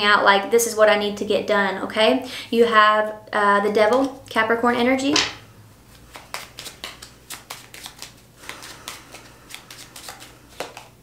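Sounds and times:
cards being shuffled by hand: 5.9 - 11.0.

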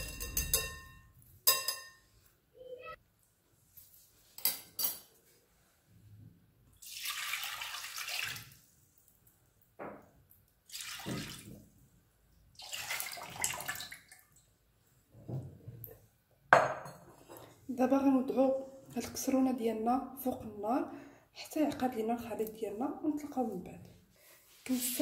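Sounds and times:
milk pouring into a pan: 6.8 - 9.3, 10.7 - 11.6.

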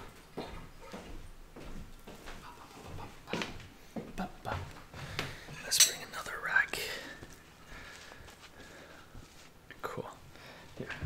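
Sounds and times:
soft murmured voice: 2.2 - 7.4, 9.7 - 11.0
hands drying on cloth towel: 7.2 - 9.7.

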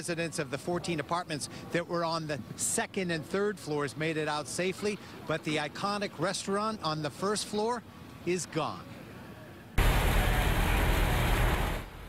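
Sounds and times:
building fire rumbling: 9.8 - 12.0.

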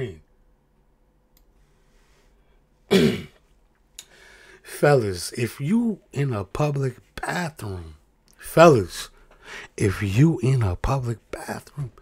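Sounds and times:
man clearing throat: 2.9 - 3.4.

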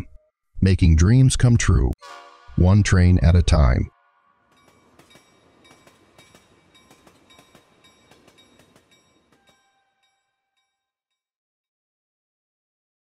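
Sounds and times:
train wheels clicking over rail joints: 4.5 - 10.3
light ringing tone: 4.5 - 10.8.

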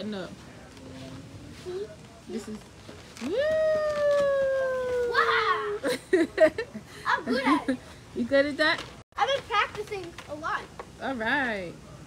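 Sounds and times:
person cheering woooo: 3.3 - 5.8
laughter: 5.8 - 7.8.

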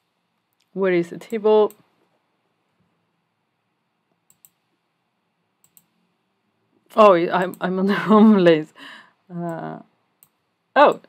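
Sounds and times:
faint computer mouse clicks: 4.2 - 4.6, 5.6 - 5.9.

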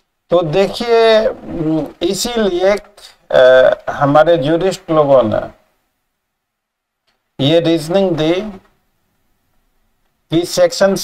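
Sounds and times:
man speaking: 0.3 - 5.7, 7.4 - 8.8, 10.3 - 11.0.

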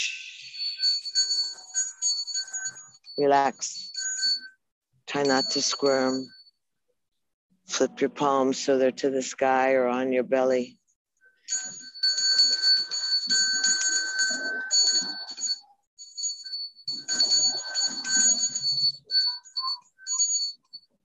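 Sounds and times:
metal hand bell ringing: 0.0 - 4.5, 11.5 - 20.7.

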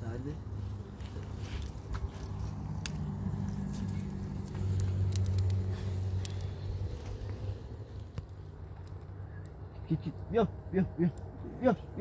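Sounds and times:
wood fire crackling and popping: 0.0 - 10.3
low engine-like hum: 0.0 - 12.0.

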